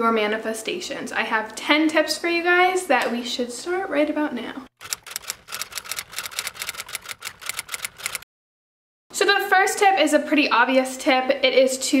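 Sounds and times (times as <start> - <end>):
typewriter key clacks: 4.8 - 8.2.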